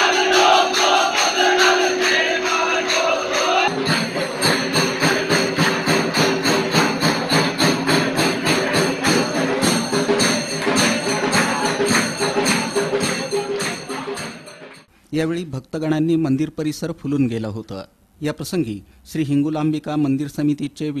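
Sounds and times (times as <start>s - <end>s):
held tone: 0.0s - 13.3s
jingling cymbals and bells: 0.0s - 14.9s.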